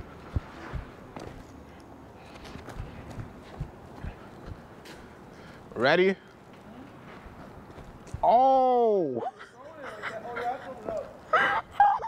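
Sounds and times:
running footsteps on concrete: 0.0s - 5.8s, 6.5s - 8.3s.

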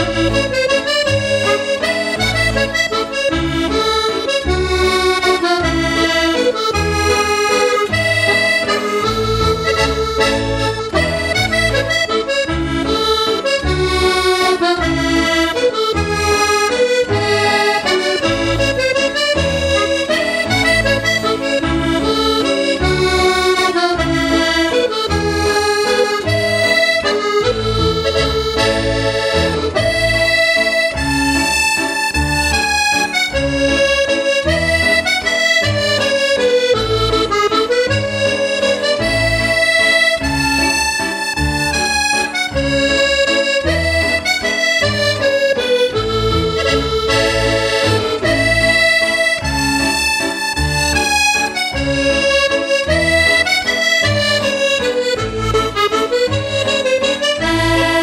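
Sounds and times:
button accordion playing a waltz: 0.0s - 58.0s.

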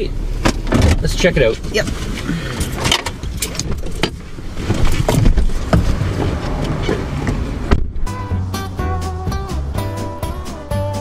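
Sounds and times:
rustling in vehicle: 0.0s - 8.2s
background music with sustained notes: 8.1s - 11.0s.

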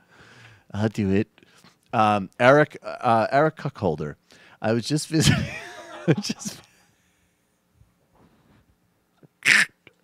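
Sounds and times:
man stifling laughter: 5.2s - 6.7s.

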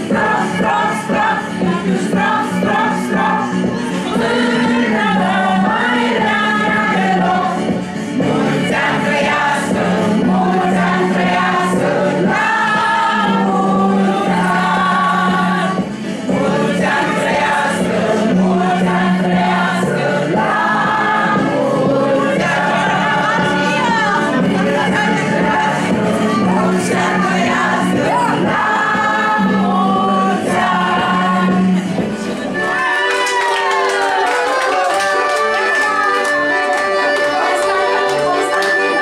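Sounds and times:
group singing in chorus: 0.0s - 39.0s.

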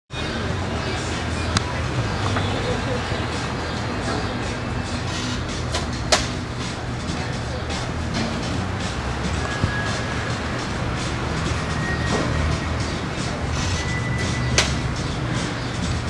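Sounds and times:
faint music: 0.1s - 16.0s
indistinct voices: 0.1s - 16.0s
traffic rumble: 0.1s - 16.0s
sharp click: 5.7s - 6.4s.

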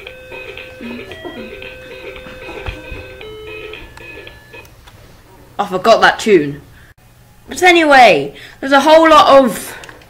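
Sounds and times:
toy playing electronic tune: 0.0s - 4.7s.

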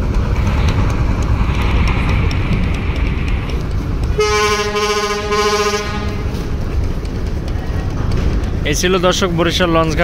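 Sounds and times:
steady low rumble: 0.0s - 10.0s
boat horn long blast: 4.2s - 6.3s.

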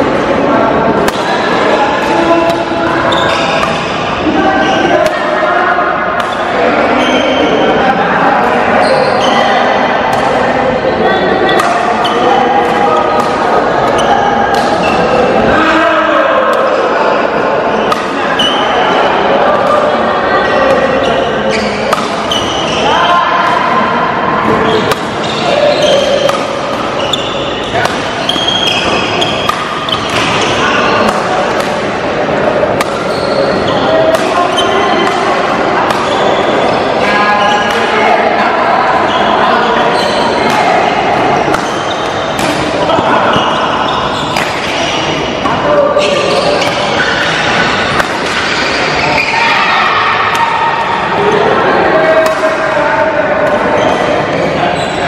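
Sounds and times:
rackets striking shuttlecock: 1.0s - 5.4s, 6.1s - 7.2s, 10.1s - 10.4s, 11.5s - 15.5s, 17.8s - 20.0s, 21.6s - 22.8s, 24.4s - 49.3s, 52.1s - 52.7s.

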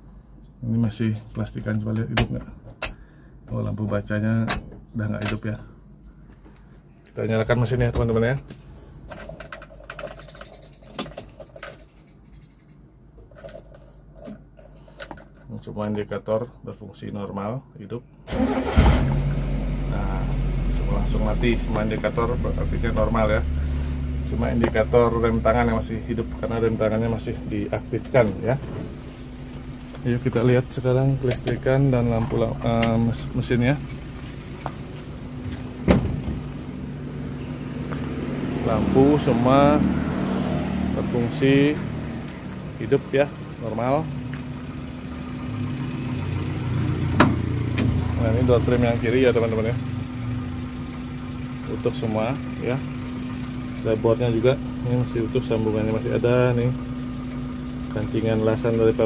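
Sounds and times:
ignition key and keyring rattling: 9.1s - 12.2s
car engine idling: 18.3s - 59.0s.

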